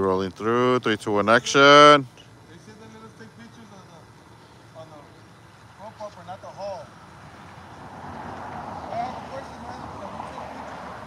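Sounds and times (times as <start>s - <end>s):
car tyre and road noise: 0.0s - 11.0s.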